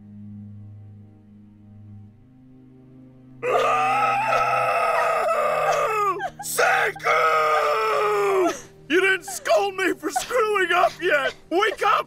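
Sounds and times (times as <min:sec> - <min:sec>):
soft sustained music: 0:00.0 - 0:12.0
man wailing: 0:03.4 - 0:12.0.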